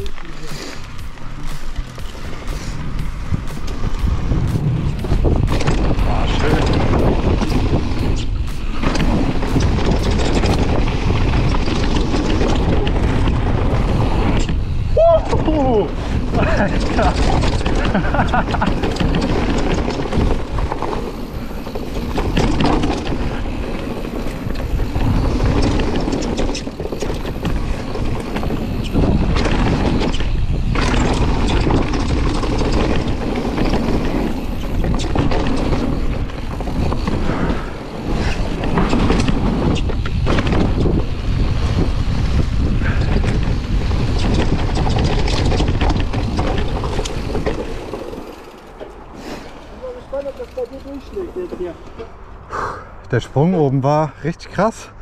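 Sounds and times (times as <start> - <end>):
bike clattering and rattling: 0.0 - 52.3
tyre and wind noise: 0.0 - 55.0.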